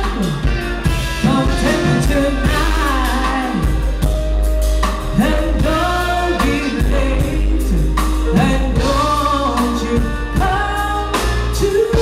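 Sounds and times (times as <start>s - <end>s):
woman singing soul vocal: 0.0s - 4.1s, 5.0s - 12.0s
bass line: 0.0s - 12.0s
drum kit: 0.0s - 12.0s.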